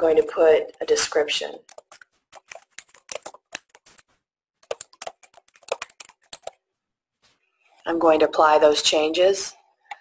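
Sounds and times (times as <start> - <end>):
typing on computer keyboard: 1.6 - 6.6.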